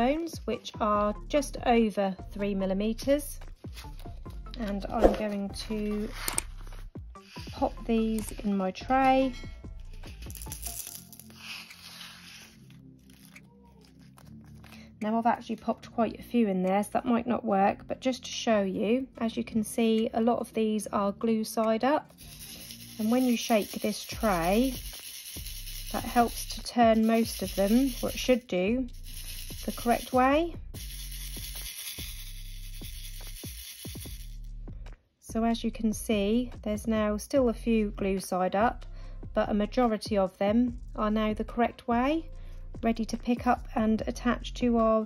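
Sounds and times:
quiet background music: 0:00.0 - 0:45.0
rhinestones rustling into plastic tray: 0:10.1 - 0:14.6, 0:22.2 - 0:28.4.

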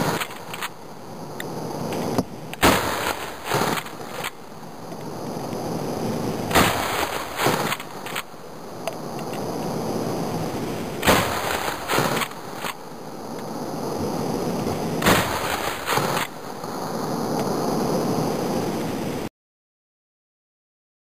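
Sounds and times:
shotgun blasts echoing: 0:02.6 - 0:04.3, 0:06.5 - 0:08.2, 0:11.0 - 0:12.7, 0:15.0 - 0:16.4.

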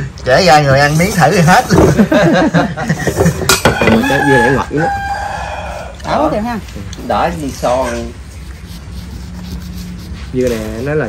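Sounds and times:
people chattering and chuckling: 0:01.4 - 0:04.9.

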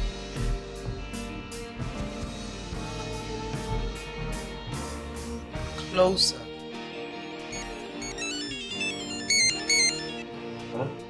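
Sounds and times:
soft background music: 0:00.0 - 0:11.0
melodic phone ringtone: 0:07.5 - 0:10.3.

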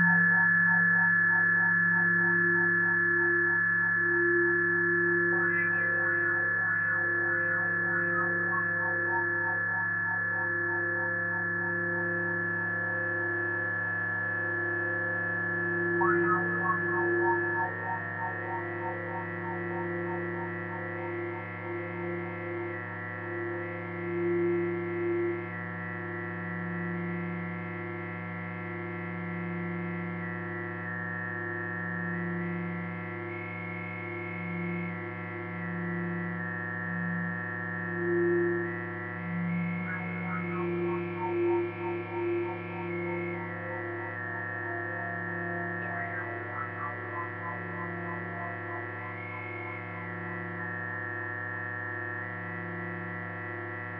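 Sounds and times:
droning background music: 0:00.0 - 0:53.9.

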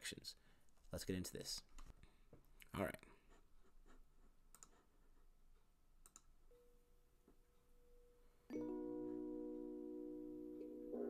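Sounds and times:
faint mouse clicks: 0:04.5 - 0:04.8, 0:06.0 - 0:06.3.

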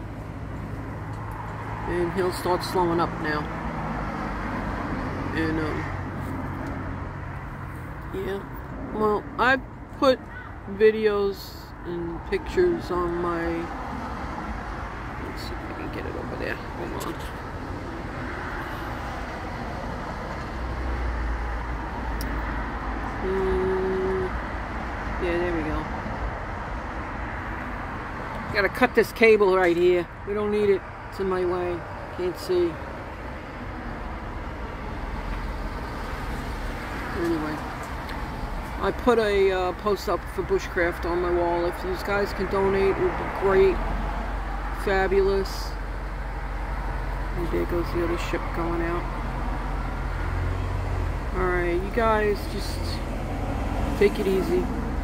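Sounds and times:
distant traffic drone: 0:00.0 - 0:55.0
heavy vehicle rumble: 0:00.0 - 0:55.0.

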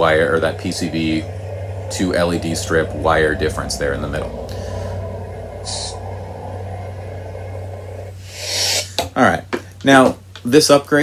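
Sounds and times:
loud hiss: 0:00.0 - 0:09.1
lightsaber hum: 0:00.0 - 0:09.5.

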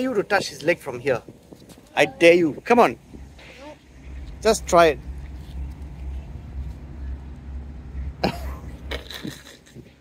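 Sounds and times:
low steady outdoor rumble: 0:00.0 - 0:10.0.

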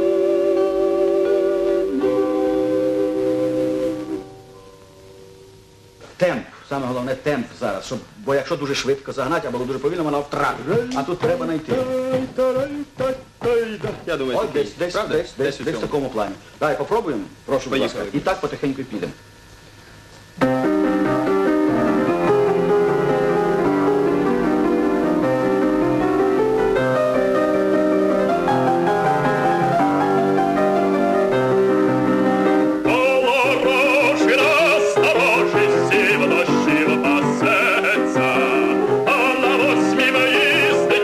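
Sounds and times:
grand piano playing chords: 0:00.0 - 0:06.0, 0:08.7 - 0:16.2, 0:20.4 - 0:41.0.

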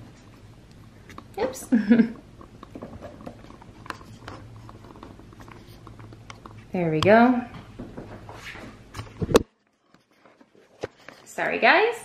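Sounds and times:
low steady hum: 0:00.0 - 0:11.5.

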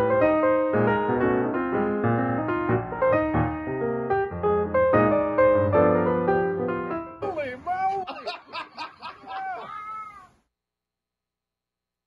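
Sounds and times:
high-pitched vocal cry: 0:09.2 - 0:10.4.

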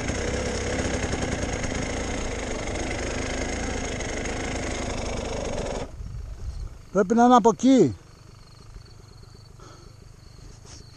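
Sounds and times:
dirt bike engine idling: 0:00.0 - 0:10.9
faint insect chirp: 0:05.9 - 0:10.9.

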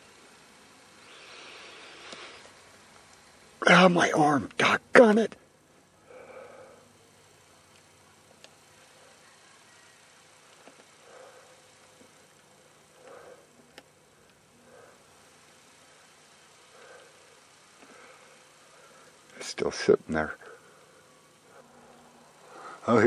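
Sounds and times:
faint breathing: 0:01.0 - 0:02.6, 0:06.0 - 0:07.8, 0:08.6 - 0:19.4, 0:20.4 - 0:22.9.

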